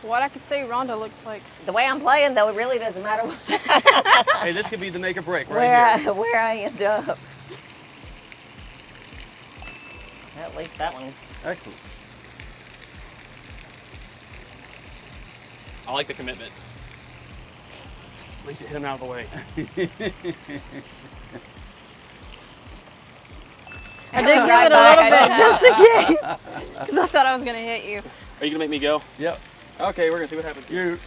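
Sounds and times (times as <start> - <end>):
insects trilling: 0.0 - 31.0.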